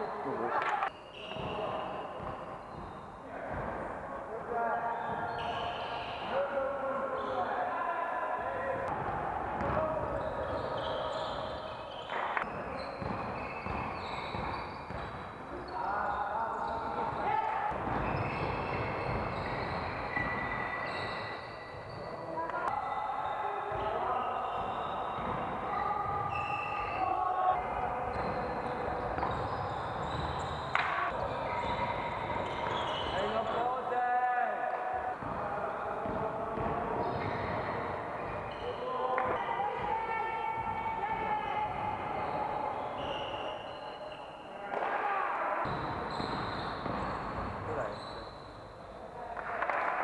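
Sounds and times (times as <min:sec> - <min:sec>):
basketball bouncing on court: 0:01.2 - 0:03.9, 0:08.9 - 0:15.5, 0:16.5 - 0:27.0, 0:27.6 - 0:33.2, 0:35.1 - 0:43.2, 0:45.7 - 0:48.0.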